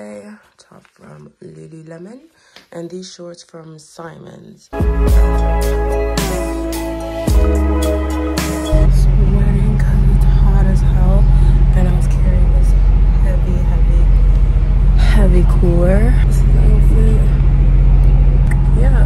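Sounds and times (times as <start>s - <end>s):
train carriage rumble and hum: 8.8s - 19.0s.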